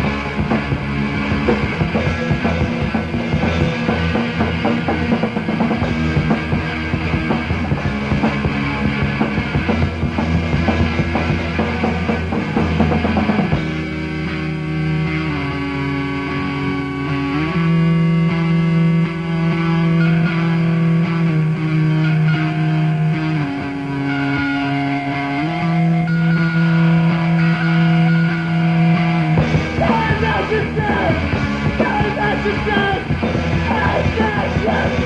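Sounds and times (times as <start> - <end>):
rock guitars holding chords: 0.0 - 35.0.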